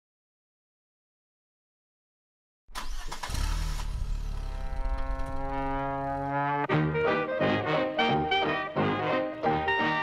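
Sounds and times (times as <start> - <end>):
held brass note: 4.6 - 10.0.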